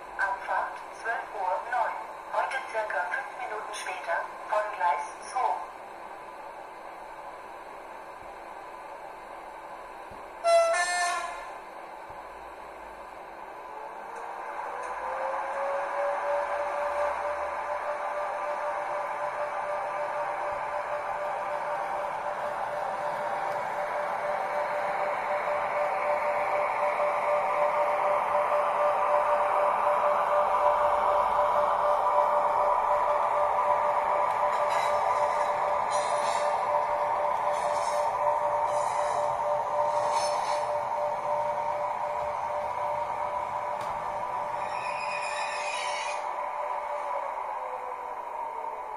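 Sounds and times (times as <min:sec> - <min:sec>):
rising electric train whine: 0:00.0 - 0:48.9
model train horn toot: 0:10.4 - 0:11.6.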